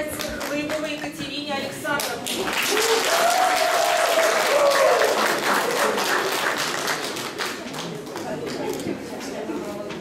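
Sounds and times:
audience applauding: 2.3 - 8.6.

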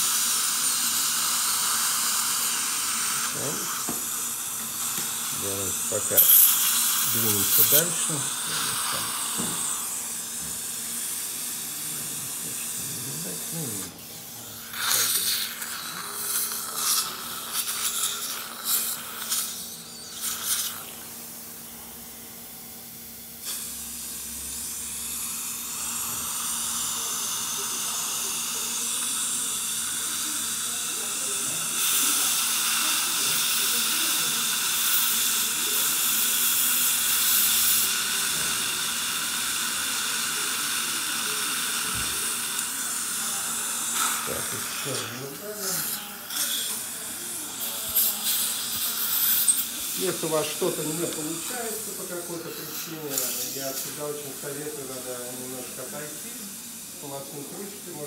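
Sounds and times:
dental suction hissing: 0.0 - 58.0.

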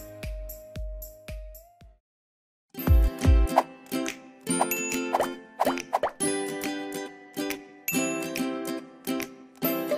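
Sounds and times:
rising pop sound effects: 4.6 - 6.2.

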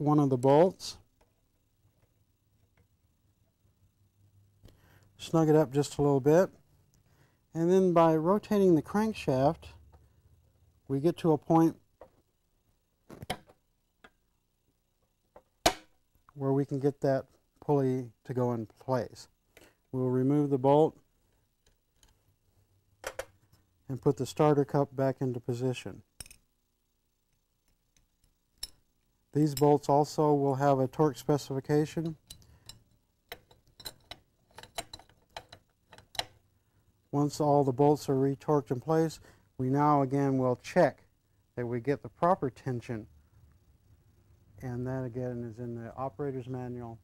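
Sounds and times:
metallic clicks and taps: 32.0 - 36.4.

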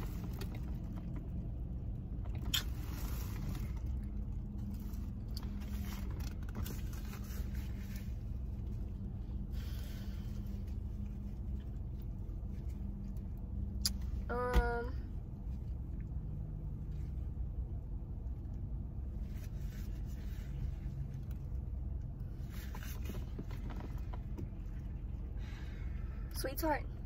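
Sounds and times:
faint clicks and rustles: 0.0 - 14.3, 18.2 - 25.4
car engine idling: 0.0 - 27.0.

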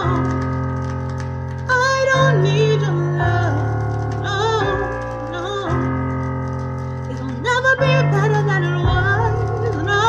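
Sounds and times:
instrumental backing chords: 0.0 - 10.0
woman singing a ballad: 0.0 - 10.0.

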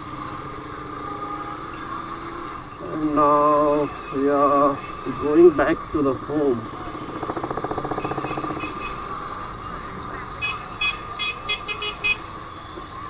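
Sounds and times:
motorcycle engine pulsing: 6.7 - 9.3.

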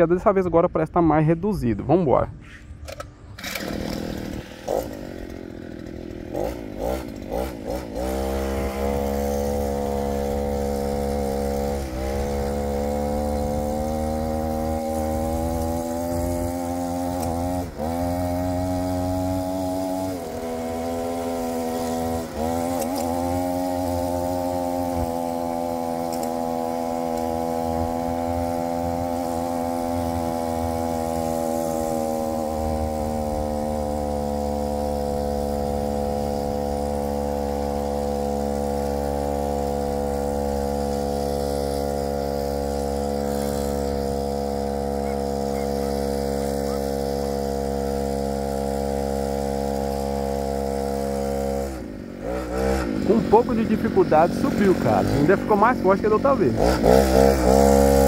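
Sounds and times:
small engine revving: 2.4 - 58.0.

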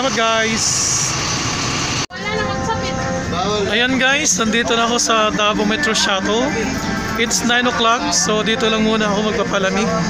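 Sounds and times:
vehicle noise: 0.0 - 10.0
background music with held notes: 2.1 - 10.0.

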